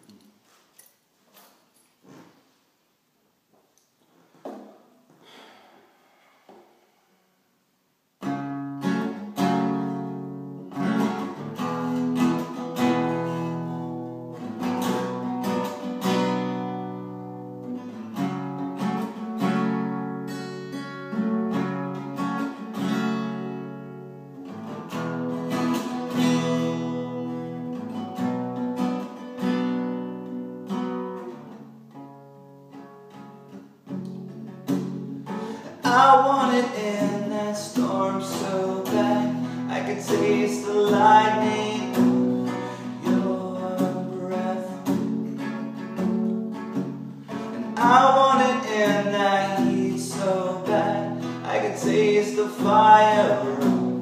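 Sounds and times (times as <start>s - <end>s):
guitar strumming chords: 8.2s - 54.0s.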